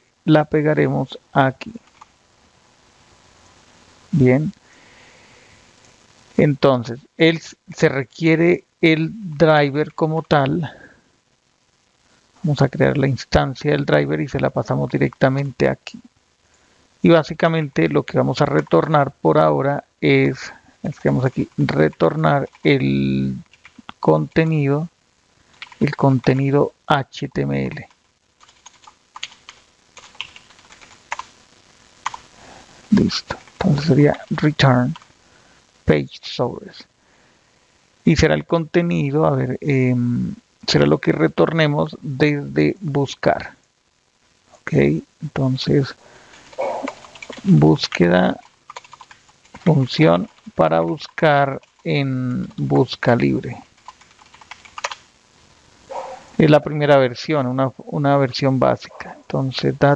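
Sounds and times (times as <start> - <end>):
computer keyboard typing: 1.8 - 2.1, 21.2 - 22.8, 23.5 - 23.9, 25.5 - 25.9, 28.4 - 31.3, 32.0 - 32.2, 46.3 - 51.0, 51.6 - 51.9, 53.8 - 55.0.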